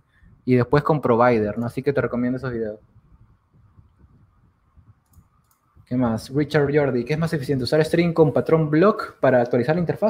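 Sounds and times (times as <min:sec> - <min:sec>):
low steady hiss: 0:00.0 - 0:10.0
computer mouse clicks: 0:05.0 - 0:05.8.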